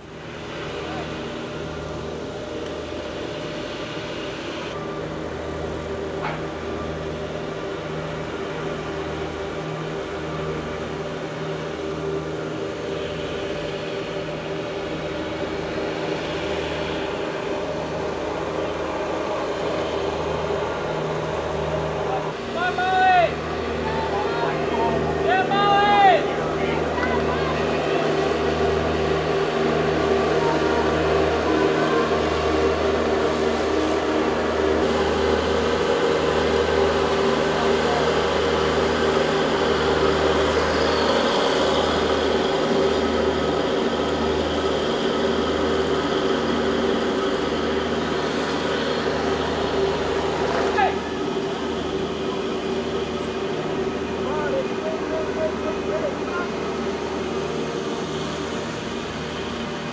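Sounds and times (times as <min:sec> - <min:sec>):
riding lawn mower engine running: 0:00.0 - 0:59.9.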